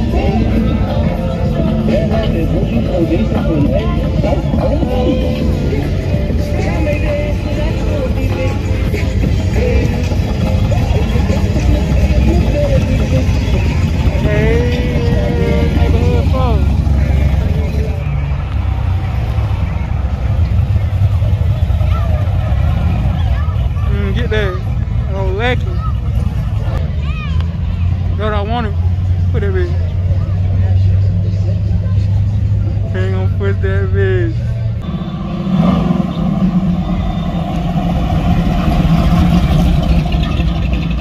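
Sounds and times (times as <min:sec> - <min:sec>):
people calling out: 0:00.0 - 0:18.3
car engine rumbling: 0:00.0 - 0:41.0.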